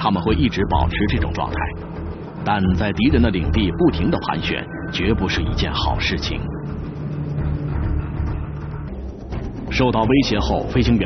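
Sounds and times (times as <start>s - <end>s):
jet engines droning: 0.0s - 11.0s.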